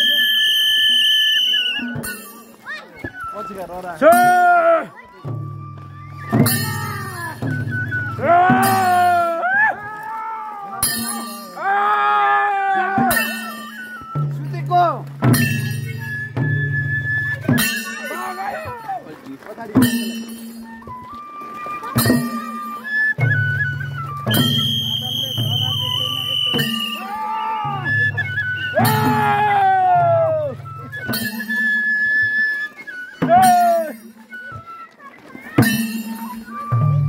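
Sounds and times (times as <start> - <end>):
high whistled note: 0.0 - 4.2, 5.4 - 9.4, 20.5 - 37.0
voices calling: 0.0 - 37.0
hand drum strokes: 1.7 - 37.0.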